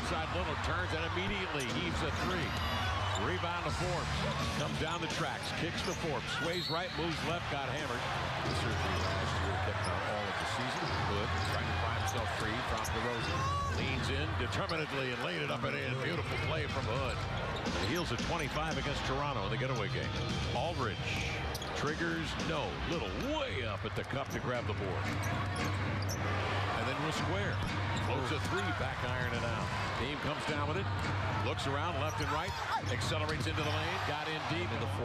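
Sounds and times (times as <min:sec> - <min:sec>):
crowd murmur with voices: 0:00.0 - 0:35.0.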